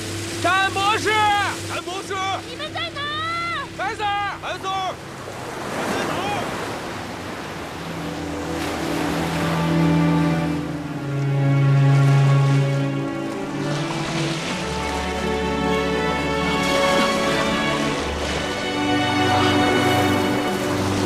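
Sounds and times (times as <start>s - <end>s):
surf breaking over rocks: 0.0s - 10.2s
dramatic background music: 0.0s - 21.0s.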